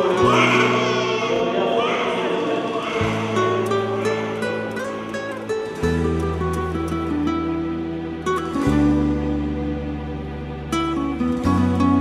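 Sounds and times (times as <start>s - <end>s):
choir singing sustained chords: 0.0s - 11.9s.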